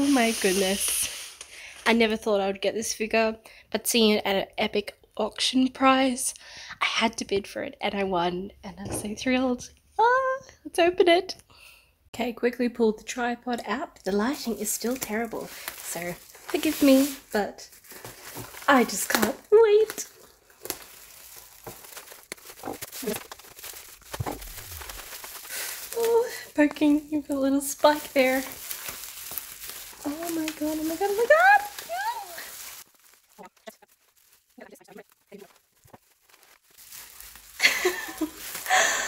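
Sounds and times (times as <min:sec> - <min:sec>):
knife slitting bubble wrap: 0:00.0 - 0:01.4, 0:14.3 - 0:39.0
bubble wrap crinkling: 0:00.0 - 0:02.2, 0:14.1 - 0:39.0.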